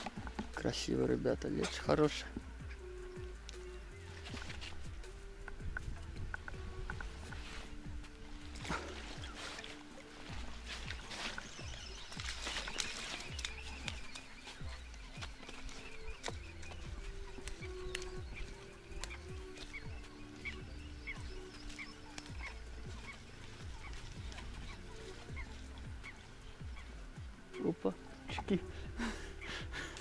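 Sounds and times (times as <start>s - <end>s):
low animal calls: 0.0s - 30.0s.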